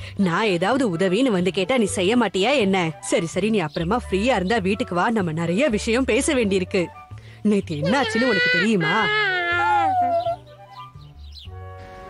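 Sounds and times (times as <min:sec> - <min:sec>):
cartoon baby wailing: 0:07.8 - 0:10.4.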